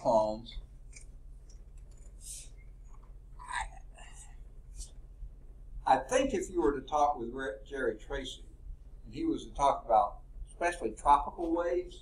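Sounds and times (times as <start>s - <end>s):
low electrical hum: 0.0s - 12.0s
person whispering: 3.4s - 4.9s.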